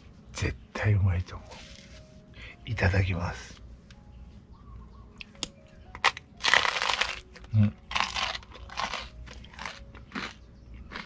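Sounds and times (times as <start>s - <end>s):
crunching bites of toast: 6.0s - 11.0s.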